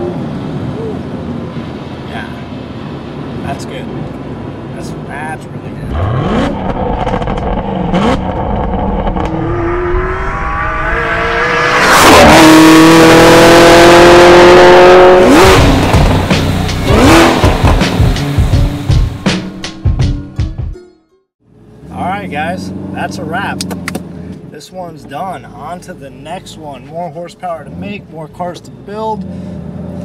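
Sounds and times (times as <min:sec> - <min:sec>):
car engine revving hard: 0:05.9 - 0:18.8.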